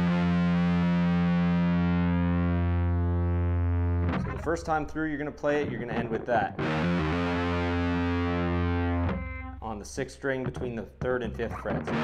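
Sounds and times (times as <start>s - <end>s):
distorted electric guitar note: 0.0s - 5.0s, 5.6s - 9.6s, 11.6s - 12.0s.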